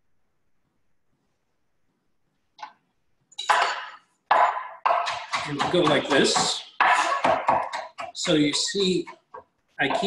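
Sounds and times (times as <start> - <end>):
knife chopping on cutting board: 3.5 - 10.0
knife tapping on cutting board: 4.3 - 10.0.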